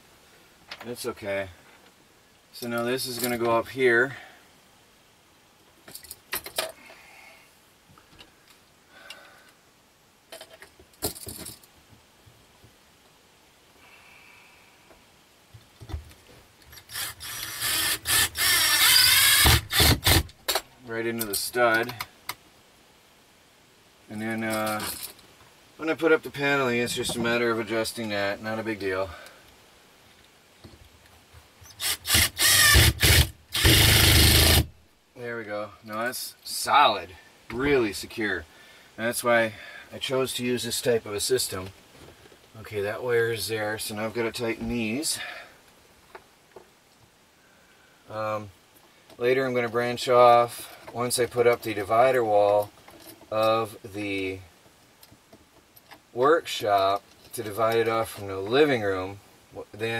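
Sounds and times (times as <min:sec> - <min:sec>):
metal box and screws rattling: 0:10.3 - 0:11.7
screw grinding and squeaking: 0:16.7 - 0:20.6.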